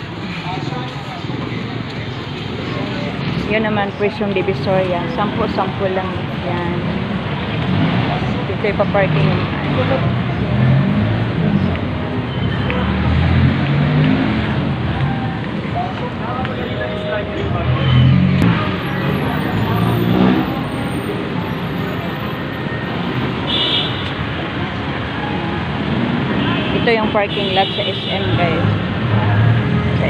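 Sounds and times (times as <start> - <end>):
indistinct voices: 0.0 - 23.0
traffic rumble: 0.0 - 30.0.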